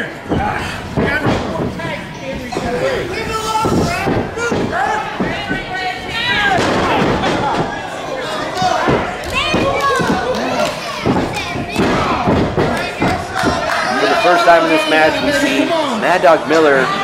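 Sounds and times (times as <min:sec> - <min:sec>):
people shouting: 0:02.6 - 0:16.0.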